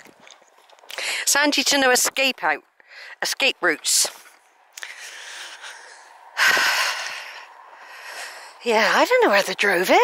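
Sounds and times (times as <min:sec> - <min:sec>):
person breathing: 0:00.9 - 0:01.3, 0:02.8 - 0:03.2, 0:04.8 - 0:08.6.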